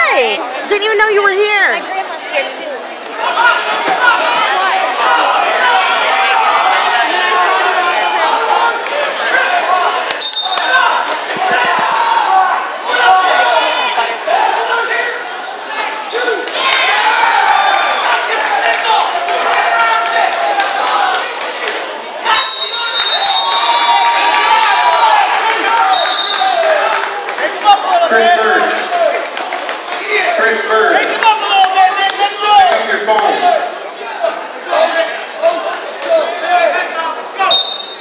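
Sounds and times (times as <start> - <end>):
crowd chatter: 0.0 - 38.0
spectators and coaches shouting: 0.0 - 38.0
referee whistle blast: 10.2 - 10.9, 22.3 - 23.7, 25.9 - 26.6, 37.5 - 38.0.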